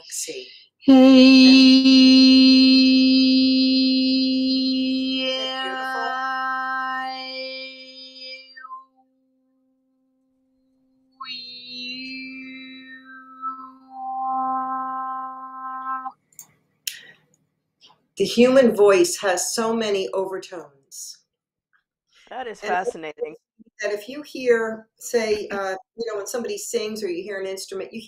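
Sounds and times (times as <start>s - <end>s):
person singing a steady tone: 0.7s - 9.0s, 11.2s - 15.6s
sliding falling tone: 11.2s - 16.1s.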